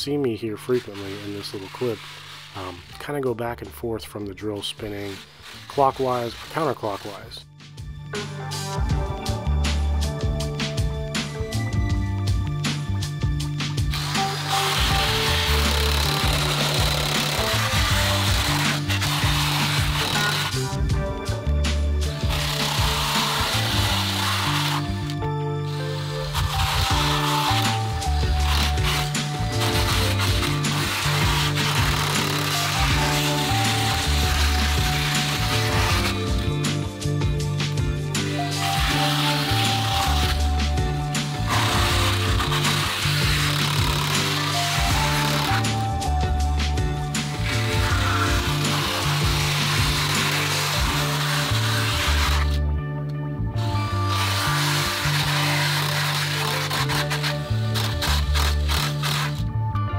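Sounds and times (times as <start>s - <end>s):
wire brush drill grinding foam: 0.0s - 3.6s, 4.4s - 7.4s, 13.8s - 52.6s, 53.6s - 59.5s
background music: 0.0s - 59.9s.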